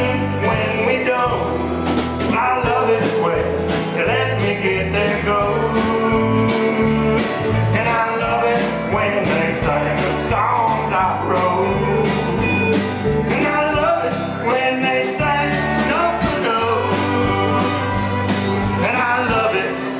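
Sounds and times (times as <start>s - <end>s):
country band playing: 0.0s - 19.9s
pedal steel guitar: 10.9s - 19.0s.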